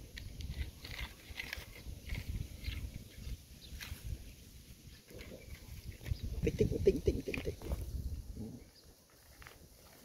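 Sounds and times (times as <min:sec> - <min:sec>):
plastic toy scraping dry dirt: 0:00.0 - 0:06.4.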